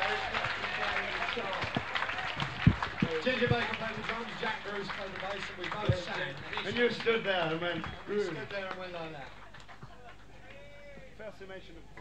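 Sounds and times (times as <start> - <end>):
low knock: 1.6 - 4.4.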